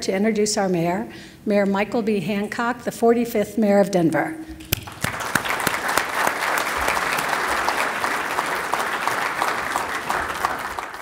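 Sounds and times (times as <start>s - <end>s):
audience applauding: 4.7s - 11.0s.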